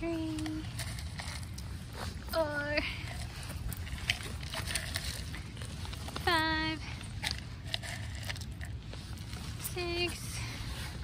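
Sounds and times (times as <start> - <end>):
light sharp clicks and crunches: 0.0 - 11.0
steady low rumble: 0.0 - 11.0.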